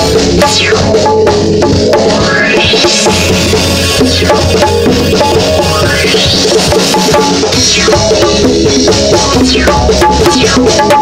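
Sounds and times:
bongos: 0.0 - 11.0
drum kit: 0.0 - 11.0
held pitched instrument notes: 0.0 - 11.0.

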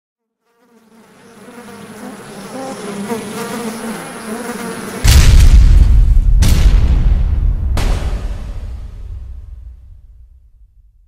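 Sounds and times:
insect buzzing: 0.2 - 5.3
loud deep boom: 5.0 - 11.0.

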